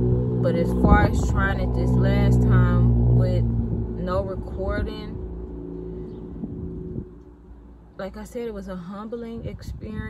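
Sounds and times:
vehicle engine hum: 0:00.0 - 0:10.0.

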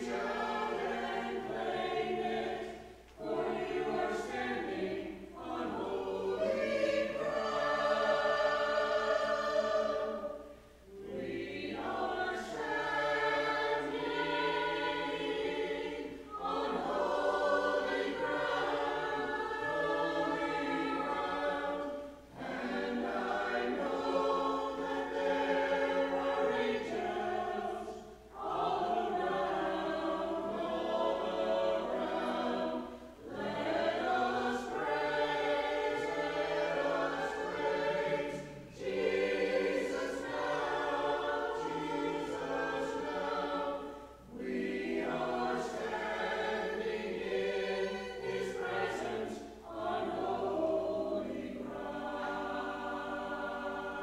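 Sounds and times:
church choir singing: 0:00.0 - 0:54.0.

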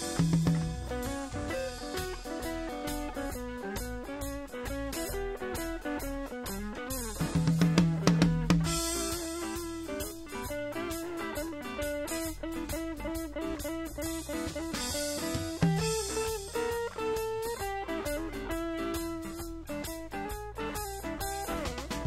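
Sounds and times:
live blues band playing: 0:00.0 - 0:22.0.

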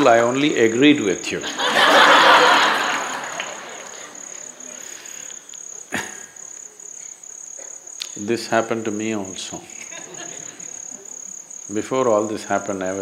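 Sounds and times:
crickets chirping: 0:00.0 - 0:13.0
audience laughter: 0:01.4 - 0:05.0, 0:09.8 - 0:11.2.

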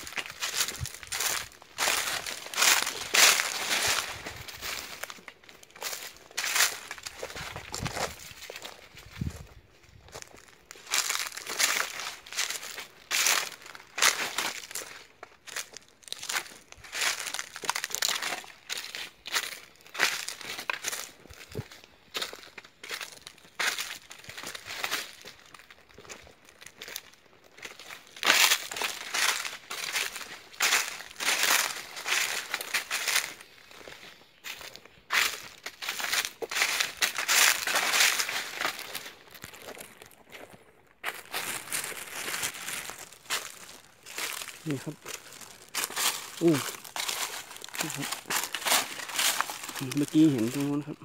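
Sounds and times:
footsteps through dry leaves: 0:00.0 - 0:51.0.

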